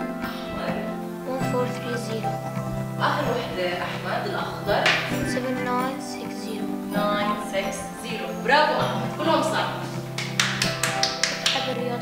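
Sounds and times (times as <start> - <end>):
background music: 0.0 - 12.0
person clapping quickly: 10.2 - 11.8.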